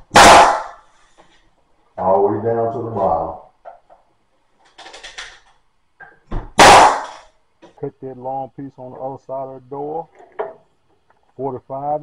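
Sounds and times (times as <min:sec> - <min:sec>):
staple gun shot: 0:06.6 - 0:07.3.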